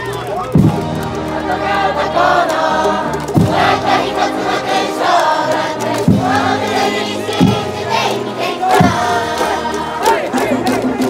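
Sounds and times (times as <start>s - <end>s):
brass band playing: 0.6s - 11.0s
crowd of students singing: 1.1s - 11.0s
heavy drum beat: 3.3s - 4.0s, 6.0s - 6.7s, 7.3s - 8.0s, 8.6s - 9.4s.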